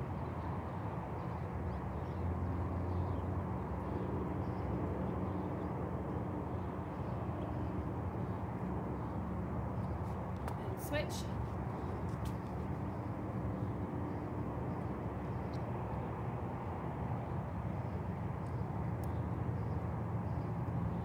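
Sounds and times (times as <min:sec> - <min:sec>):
outdoor background rumble: 0:00.0 - 0:21.0.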